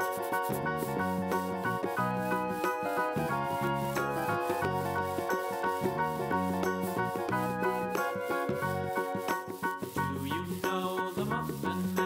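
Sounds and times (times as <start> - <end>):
marker scratching on foam: 0.0 - 1.8
instrumental background music: 0.0 - 12.0.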